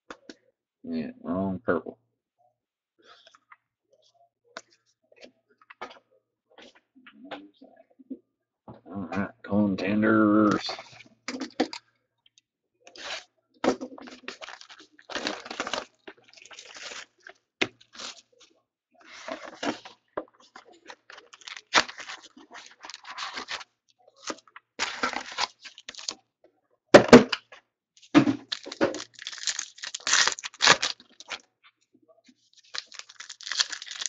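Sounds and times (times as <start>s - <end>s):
cardboard tearing and rustling: 14.1s - 17.2s, 21.2s - 23.6s, 24.2s - 26.1s, 28.4s - 31.4s, 32.6s - 34.0s.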